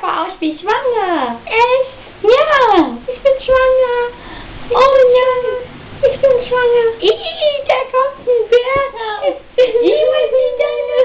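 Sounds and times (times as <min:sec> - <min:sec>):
high childlike voice singing: 0:04.8 - 0:11.0.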